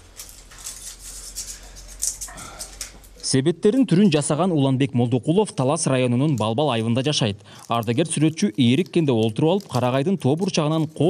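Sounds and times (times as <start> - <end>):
pine cones crackling and rustling: 0.0 - 3.3, 5.5 - 11.0
small clicks of cone scales: 6.0 - 11.0.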